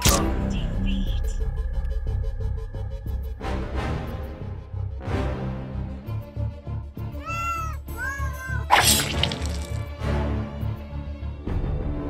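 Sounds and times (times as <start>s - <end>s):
tense background music: 0.0s - 7.2s, 8.8s - 12.0s
cat meowing: 7.2s - 9.4s.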